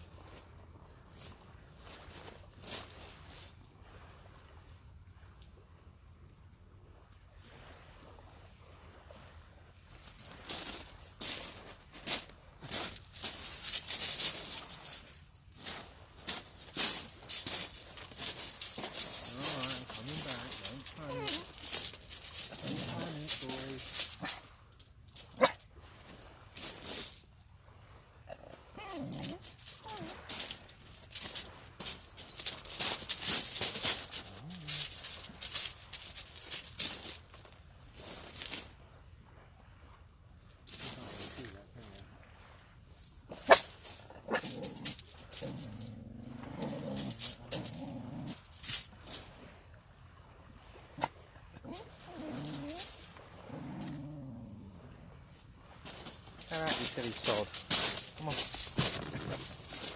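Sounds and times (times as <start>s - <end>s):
hissy scuffs and rustles: 9.9s - 27.4s, 28.9s - 38.8s, 55.3s - 59.9s
dog whining: 21.0s - 21.5s, 28.7s - 30.2s, 51.7s - 52.8s.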